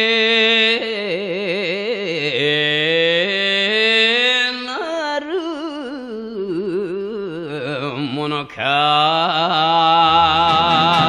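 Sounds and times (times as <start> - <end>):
man singing with vibrato: 0.0 - 11.0.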